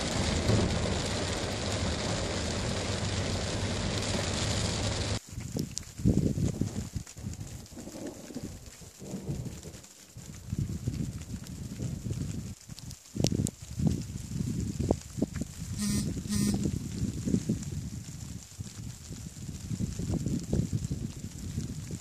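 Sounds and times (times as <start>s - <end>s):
heavy rain on car roof: 0.0s - 22.0s
wind buffeting microphone: 0.0s - 22.0s.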